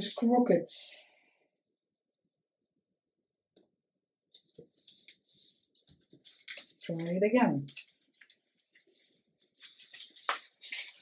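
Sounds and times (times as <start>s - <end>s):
paper rustling and sliding: 4.3s - 6.8s, 7.8s - 11.0s.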